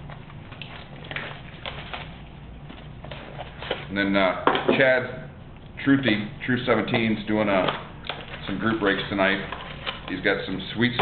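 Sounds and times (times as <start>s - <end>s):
plastic wrap crinkling: 0.0s - 4.1s, 7.4s - 10.9s
low steady hum: 0.0s - 11.0s.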